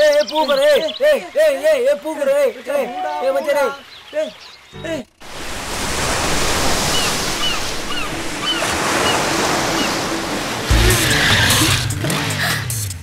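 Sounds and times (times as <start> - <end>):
ocean surf washing: 5.2 - 12.2
low music: 8.1 - 13.0.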